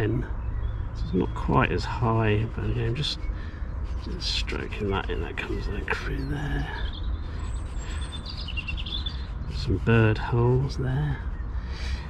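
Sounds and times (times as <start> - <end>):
steady low rumble: 0.0 - 8.4
small birds chirping: 0.0 - 12.0.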